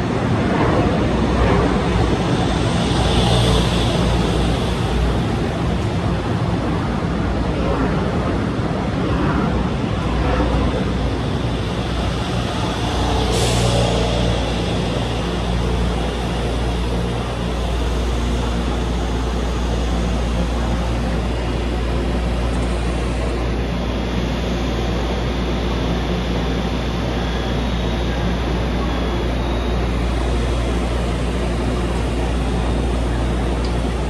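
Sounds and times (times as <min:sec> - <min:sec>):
electric train rumbling to a stop: 0:00.0 - 0:34.0.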